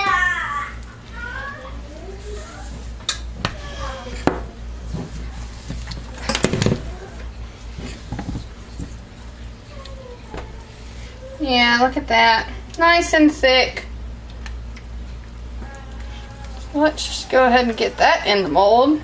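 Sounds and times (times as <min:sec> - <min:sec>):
plastic tub and utensils clattering: 0:02.7 - 0:09.0.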